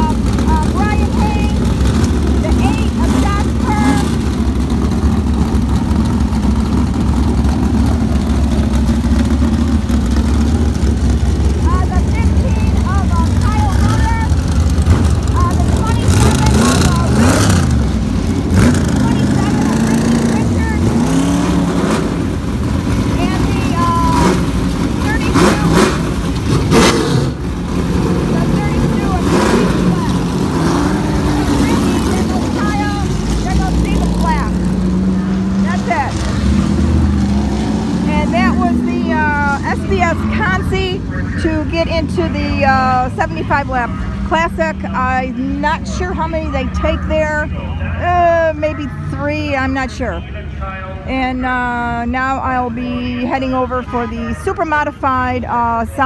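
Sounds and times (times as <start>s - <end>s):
voices: 0.0s - 37.2s, 38.0s - 56.0s
race car engines rumbling: 0.0s - 56.0s.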